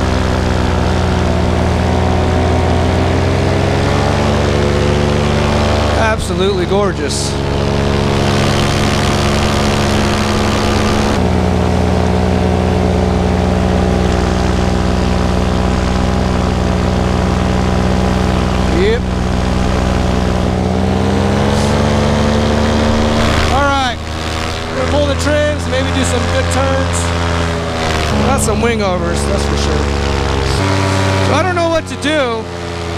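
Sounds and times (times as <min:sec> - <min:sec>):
paramotor engine running: 0:00.0 - 0:32.9.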